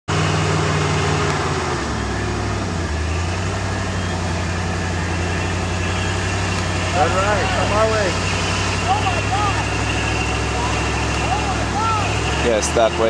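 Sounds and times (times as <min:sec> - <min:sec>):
engine running at low revs: 0:00.1 - 0:13.0.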